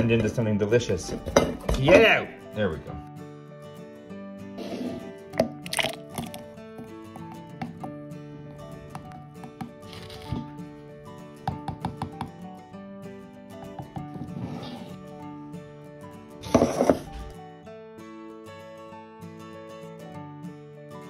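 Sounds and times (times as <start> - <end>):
background music with held notes: 0.0 - 21.0.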